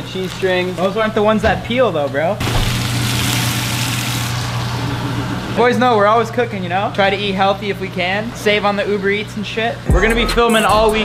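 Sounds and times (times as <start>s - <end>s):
food sizzling in a frying pan: 2.4s - 4.8s.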